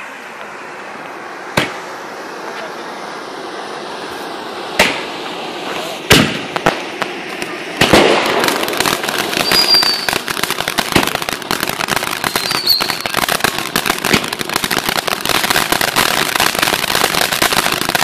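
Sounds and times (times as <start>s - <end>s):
firework fountain crackling: 0.0s - 18.0s
firework bang: 1.5s - 1.9s, 4.7s - 18.0s.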